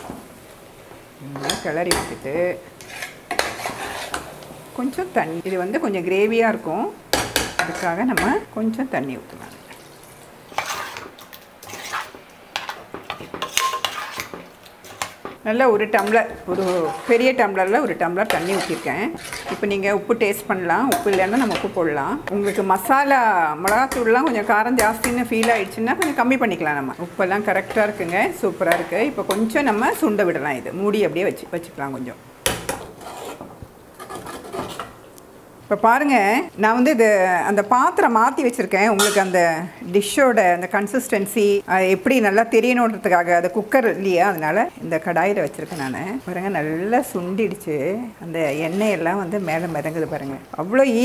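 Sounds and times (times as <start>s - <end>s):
ladle scraping pot: 1.2s - 4.5s, 10.5s - 30.3s, 32.5s - 35.0s, 48.4s - 50.5s
metal ladle clinking against pot: 38.9s - 39.4s.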